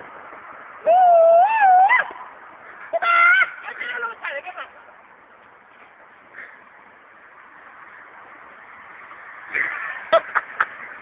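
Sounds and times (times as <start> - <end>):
person yelling: 0.8 - 2.1, 2.9 - 4.7.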